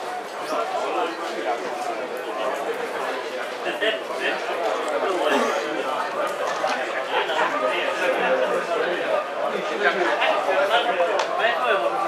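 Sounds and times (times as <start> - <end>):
crowd voices talking and calling: 0.0 - 12.0.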